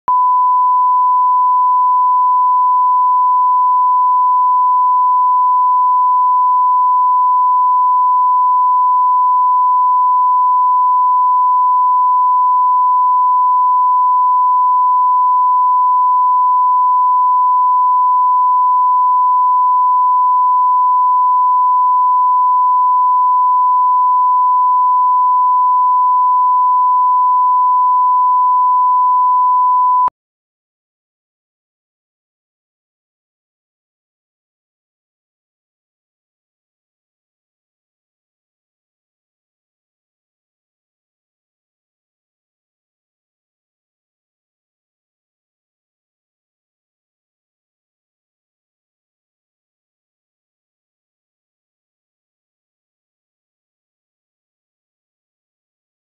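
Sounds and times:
steady reference tone beep: 0:00.1 - 0:30.1.

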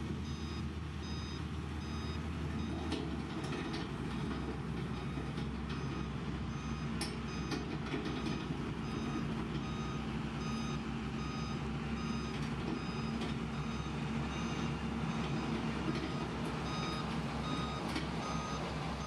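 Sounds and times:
diesel engine under load: 0:00.0 - 0:19.0
reversing alarm beeping: 0:00.2 - 0:19.0.

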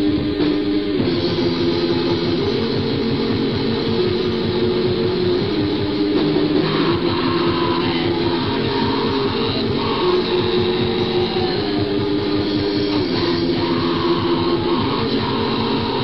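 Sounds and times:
distorted electric guitar riff: 0:00.0 - 0:16.0
rapid drumming: 0:00.0 - 0:16.0.

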